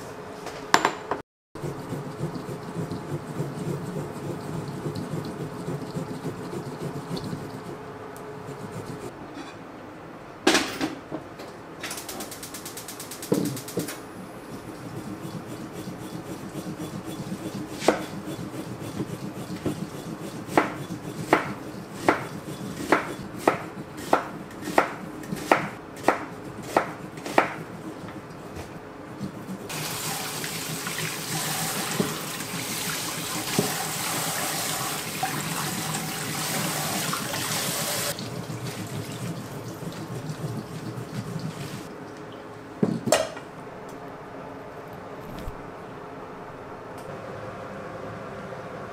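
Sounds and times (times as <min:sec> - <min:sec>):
knife chopping on wooden board: 0:15.8 - 0:27.7.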